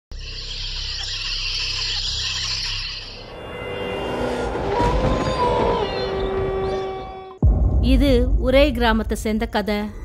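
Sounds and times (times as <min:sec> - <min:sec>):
low drone: 0:00.9 - 0:07.8.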